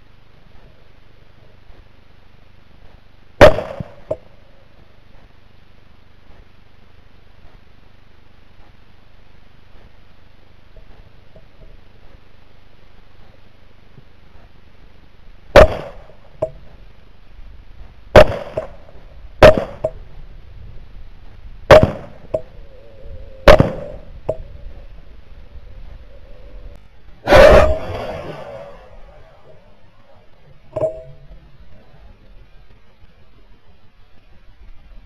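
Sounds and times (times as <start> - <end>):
rifle shots: 3.4 - 4.2, 15.6 - 16.2, 18.2 - 19.9, 21.7 - 22.3, 23.5 - 24.1, 27.3 - 29.6.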